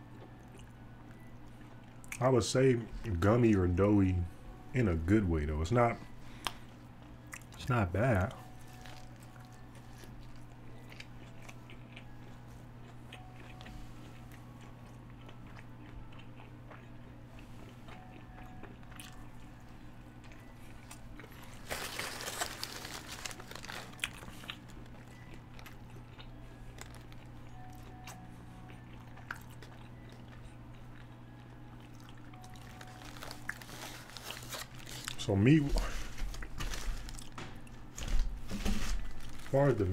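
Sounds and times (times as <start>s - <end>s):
steady low hum: 0.0s - 39.9s
person biting and chewing food: 8.4s - 19.6s, 20.2s - 35.2s.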